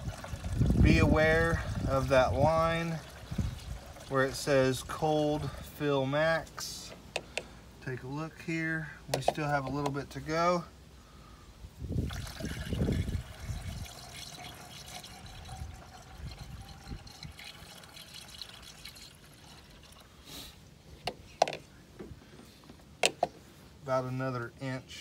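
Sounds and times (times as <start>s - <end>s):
liquid pouring through a funnel: 0.0s - 5.9s, 11.9s - 20.2s.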